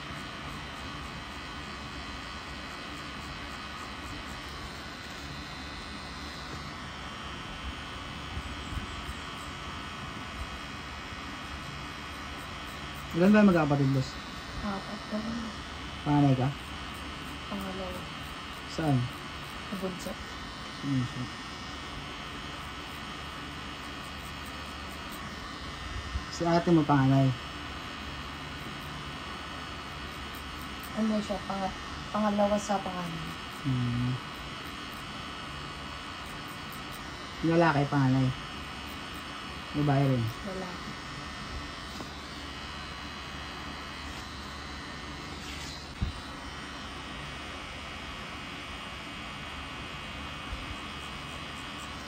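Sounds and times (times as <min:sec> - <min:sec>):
tattoo machine running: 0:00.0 - 0:52.0.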